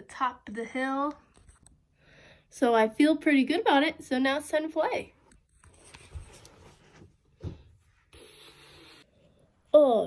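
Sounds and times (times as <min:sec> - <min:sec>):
woman's voice: 0:02.5 - 0:05.2, 0:09.7 - 0:10.0.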